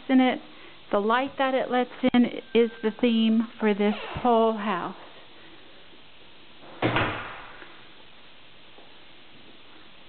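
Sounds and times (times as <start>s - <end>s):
door thump: 6.8s - 7.6s.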